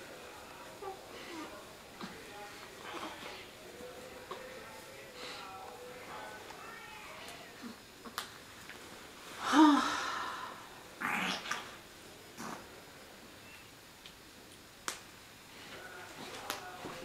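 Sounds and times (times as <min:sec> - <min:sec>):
breathy vocal sound: 0:09.4 - 0:11.5.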